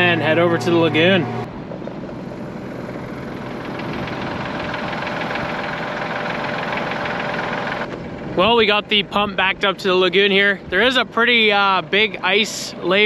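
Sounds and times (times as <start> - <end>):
tractor diesel engine running: 0.0 - 13.0.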